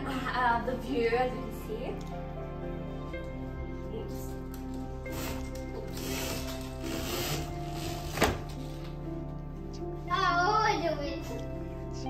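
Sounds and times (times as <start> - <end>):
background music: 0.0 - 12.0
roller blind chain rubbing: 5.1 - 8.2.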